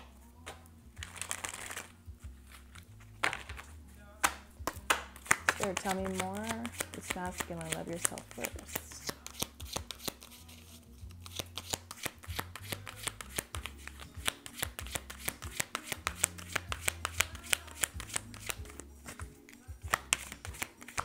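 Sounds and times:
cards being shuffled by hand: 0.0s - 21.0s.

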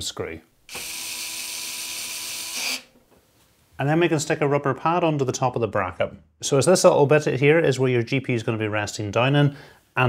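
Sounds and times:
electric screwdriver running: 0.7s - 2.9s.

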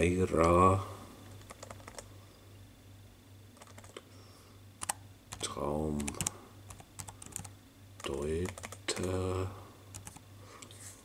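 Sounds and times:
low steady hum: 0.0s - 11.0s
laptop keyboard keystrokes: 1.4s - 2.0s, 3.6s - 4.0s, 4.8s - 9.2s, 9.9s - 10.7s.

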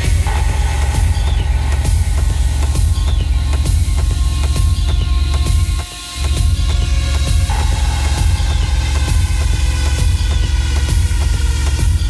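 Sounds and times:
techno music: 0.0s - 12.0s.

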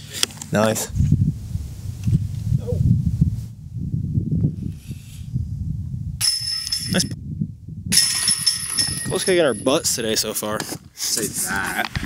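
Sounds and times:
disc hitting metal chains: 6.2s - 7.2s, 7.9s - 9.8s.

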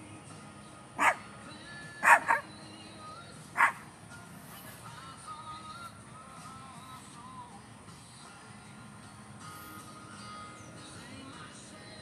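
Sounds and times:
dog barking: 1.0s - 1.2s, 2.0s - 2.5s, 3.6s - 3.8s.

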